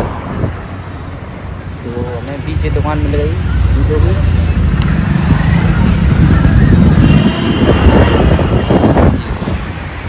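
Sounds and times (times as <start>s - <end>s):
loud street traffic: 0.0s - 10.0s.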